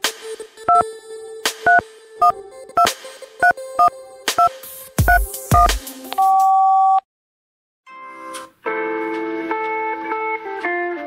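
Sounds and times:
telephone keypad dual-tone beeps: 5.1 - 7.0
steady telephone tone: 6.2 - 7.0.

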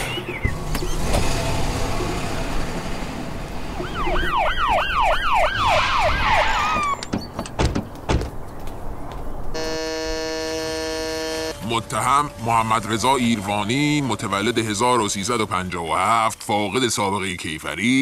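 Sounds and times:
vehicle noise: 0.0 - 17.9
police siren yelping: 3.7 - 7.1, 9.6 - 15.1
knocks: 6.7 - 8.4
steady buzzing tone: 9.6 - 11.7.

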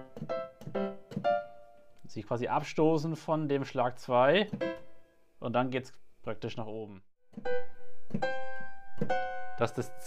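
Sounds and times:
digital piano notes: 0.0 - 5.2, 7.3 - 10.0.

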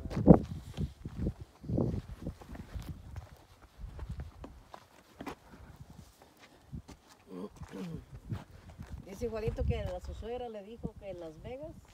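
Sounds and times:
faint voice: 7.3 - 8.1.

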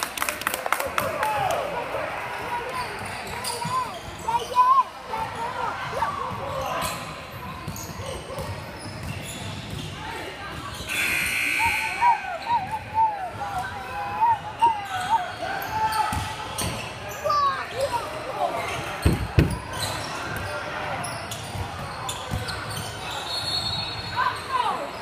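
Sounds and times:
sneakers squeaking: 2.5 - 25.0.

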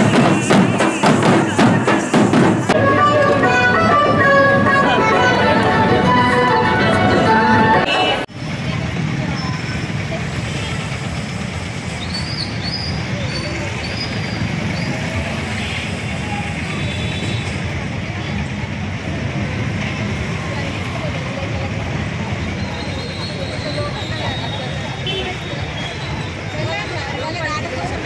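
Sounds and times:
crowd voices: 0.0 - 28.0
street traffic: 0.0 - 28.0.

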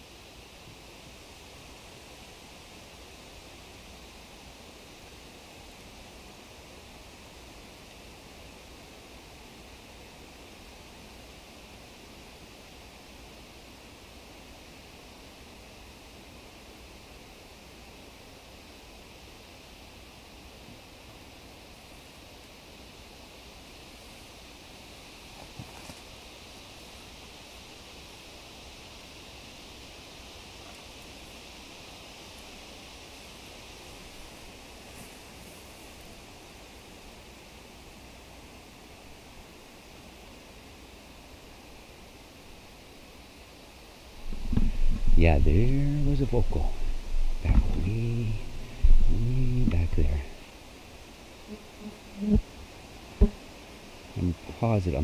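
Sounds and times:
wind in leaves: 0.0 - 55.0.

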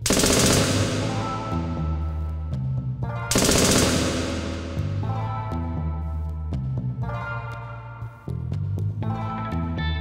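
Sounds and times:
rapid automatic gunfire: 0.0 - 1.5, 3.3 - 4.9
music with low sustained tones: 0.0 - 10.0.

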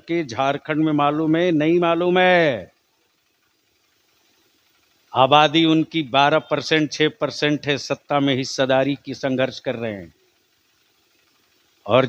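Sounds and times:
man's amplified speech: 0.0 - 2.7, 5.2 - 10.1.

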